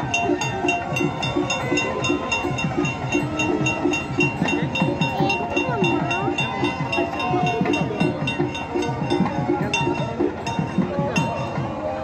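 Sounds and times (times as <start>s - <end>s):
low drum beats: 0.0s - 12.0s.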